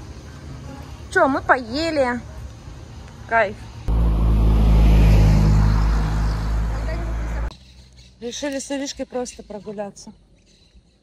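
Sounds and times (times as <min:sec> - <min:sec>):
vehicle engine rumble: 0:02.3 - 0:08.3.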